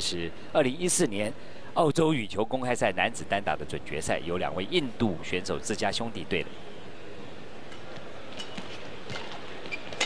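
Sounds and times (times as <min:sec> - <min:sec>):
indoor badminton hall noise: 0:06.5 - 0:10.0.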